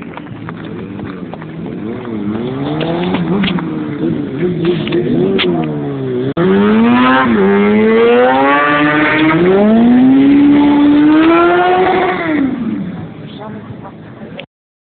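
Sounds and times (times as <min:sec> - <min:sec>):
engine revving hard: 0:01.9 - 0:12.8.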